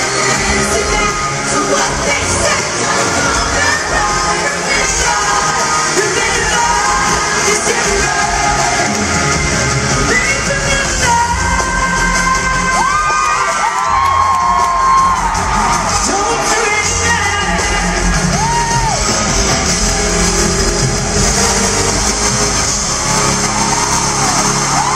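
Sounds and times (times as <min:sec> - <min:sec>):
live pop-rock band with vocals: 0:00.0 - 0:24.9
fans whooping and screaming: 0:11.3 - 0:24.9.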